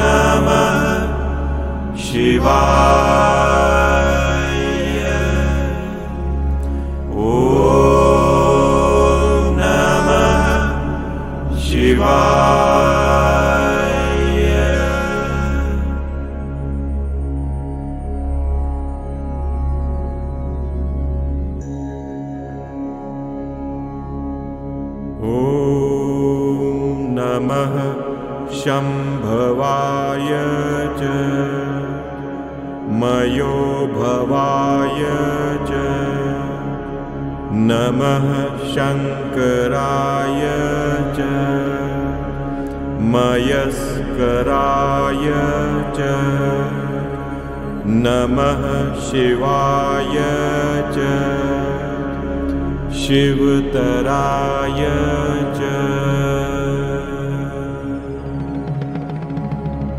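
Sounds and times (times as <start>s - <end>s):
devotional mantra chanting: 0.0s - 59.9s
steady low drone: 0.0s - 59.9s.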